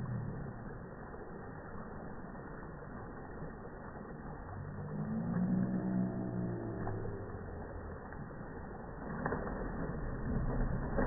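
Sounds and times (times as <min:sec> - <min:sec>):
low muffled rumble: 0:00.0 - 0:02.2, 0:04.2 - 0:11.0
deep drawn-out droning tone: 0:00.0 - 0:11.0.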